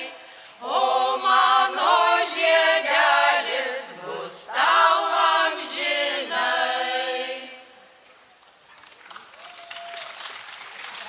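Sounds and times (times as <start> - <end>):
audience applause: 8.7 - 11.0.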